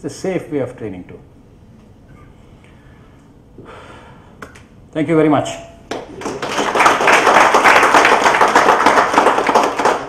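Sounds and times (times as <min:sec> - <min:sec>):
audience applauding: 0:05.9 - 0:10.0.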